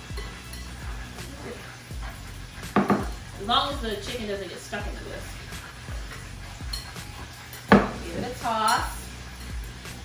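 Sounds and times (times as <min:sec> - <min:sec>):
whisk clinking against glass: 0:00.0 - 0:03.3, 0:05.4 - 0:09.9
whisk stirring in glass bowl: 0:00.0 - 0:10.0.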